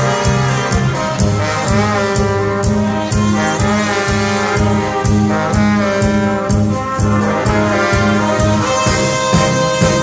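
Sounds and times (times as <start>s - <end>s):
brass band playing: 0.0s - 10.0s
drums beating: 0.0s - 10.0s.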